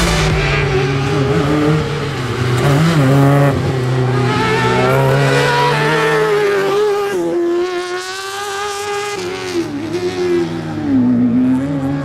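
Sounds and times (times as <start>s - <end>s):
car engine revving high: 0.0s - 12.0s.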